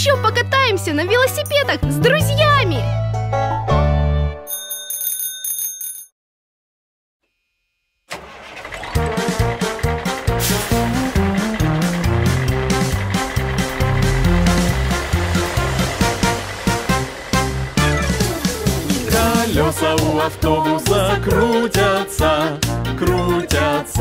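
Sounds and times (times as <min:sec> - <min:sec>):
bright bell-like chime: 0:04.4 - 0:06.1
upbeat children's song: 0:09.2 - 0:24.0.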